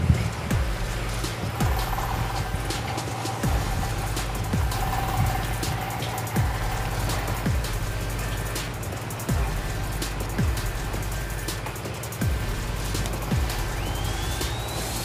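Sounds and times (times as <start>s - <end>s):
deep bass drum hits: 0.0s - 2.8s, 3.4s - 8.3s, 9.3s - 11.1s, 12.2s - 13.9s
light ticking cymbals: 0.0s - 15.0s.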